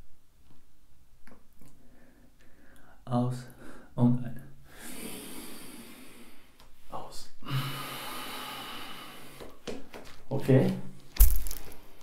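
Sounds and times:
man breathing heavily: 0:01.7 - 0:04.0, 0:04.6 - 0:06.6, 0:07.4 - 0:09.6.

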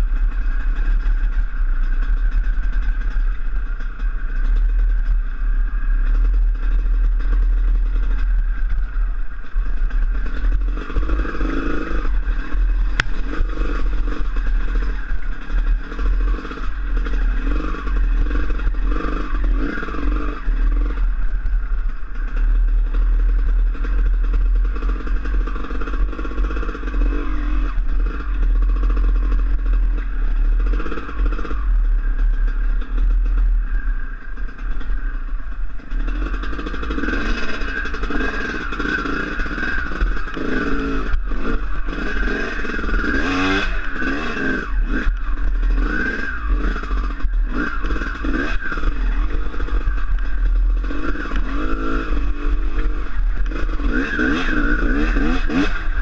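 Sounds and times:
dirt bike engine revving: 0:03.0 - 0:35.1, 0:35.7 - 0:56.0.

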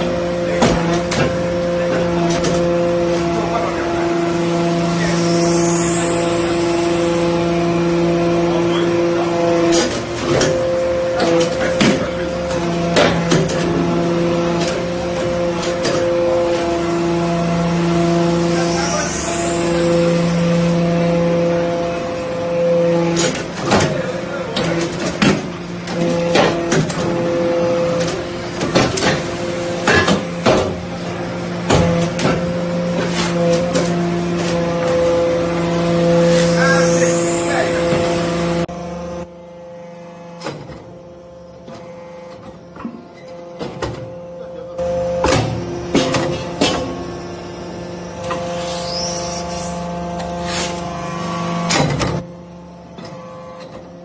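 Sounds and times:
hydraulic power unit hum: 0:00.0 - 0:54.0.

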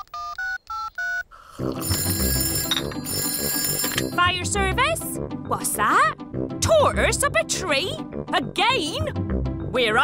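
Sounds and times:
phone keypad beeps: 0:00.0 - 0:01.2
telephone bell ringing: 0:00.2 - 0:04.4.

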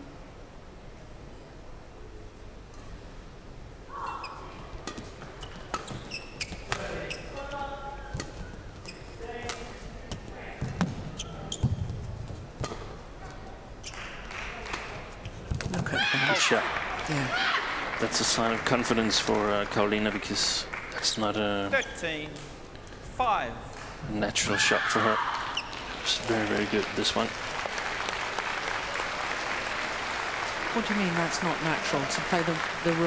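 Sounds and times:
court shoes squeaking: 0:03.9 - 0:14.2, 0:21.6 - 0:22.6, 0:25.4 - 0:25.9.

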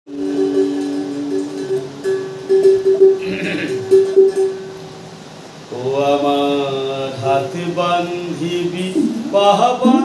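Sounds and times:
plucked one-string lute: 0:00.1 - 0:05.1.

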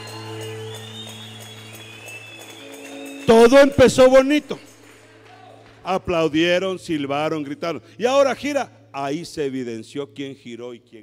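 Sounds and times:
electric keyboard sustained chord: 0:00.0 - 0:10.6.

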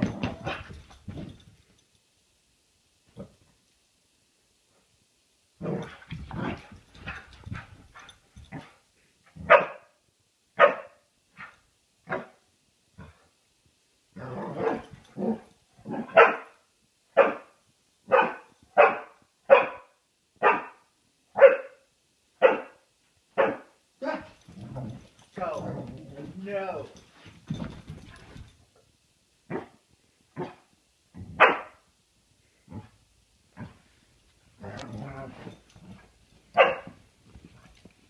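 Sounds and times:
dog barking: 0:09.4 - 0:10.0, 0:10.6 - 0:11.5, 0:16.0 - 0:16.6, 0:17.2 - 0:20.8, 0:21.4 - 0:21.8, 0:22.4 - 0:22.8, 0:23.4 - 0:24.2, 0:31.4 - 0:31.8, 0:36.6 - 0:37.0
dog growling: 0:14.2 - 0:16.1, 0:24.0 - 0:26.4, 0:34.6 - 0:35.9.

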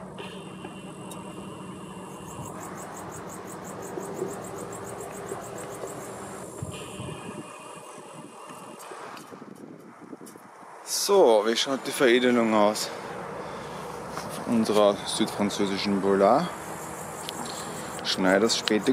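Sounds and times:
insects chirping: 0:00.0 - 0:18.9
low engine hum: 0:00.0 - 0:18.9.

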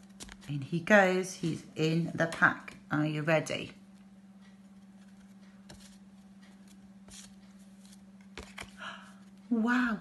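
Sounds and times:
steady low hum: 0:00.0 - 0:10.0
paper cards sliding: 0:06.6 - 0:08.8.

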